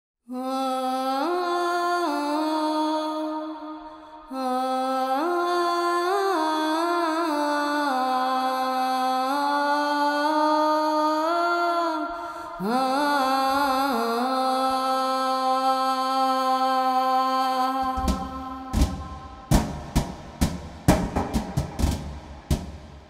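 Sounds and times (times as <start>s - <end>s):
person singing solo: 4.4s - 19.4s.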